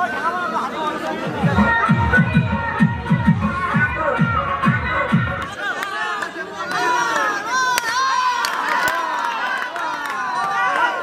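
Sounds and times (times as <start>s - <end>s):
crowd chatter: 0.0s - 11.0s
low drum beat music: 1.3s - 5.5s.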